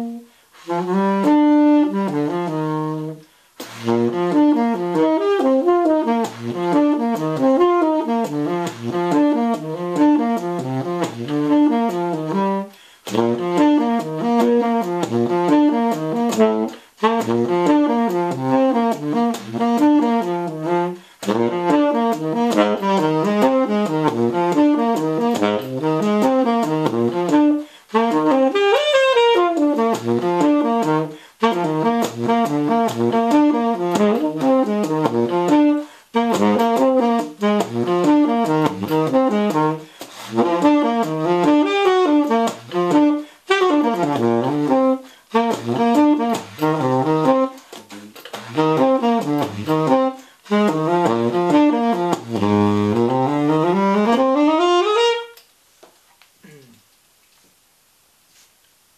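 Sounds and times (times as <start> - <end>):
tenor saxophone jazz lines: 0.0 - 55.5
player breathing: 3.2 - 3.6, 12.7 - 13.1, 20.9 - 21.2, 27.6 - 27.9, 31.1 - 31.4, 35.8 - 36.2, 39.8 - 40.3, 43.2 - 43.5, 45.0 - 45.3.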